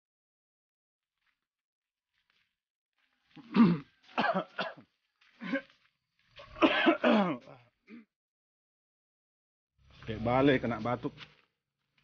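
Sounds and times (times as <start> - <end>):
man clearing his throat: 3.4 - 4.8, 6.6 - 8.1
man coughing: 3.4 - 4.8, 6.6 - 8.1.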